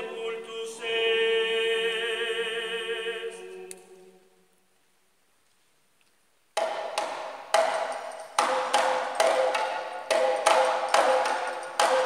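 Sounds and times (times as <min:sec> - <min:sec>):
drums playing interlocking rhythm: 0:06.6 - 0:12.0.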